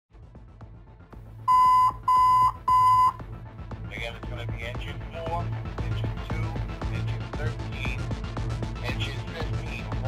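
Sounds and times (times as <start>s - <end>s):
electronic alert beeps: 1.5s - 3.2s.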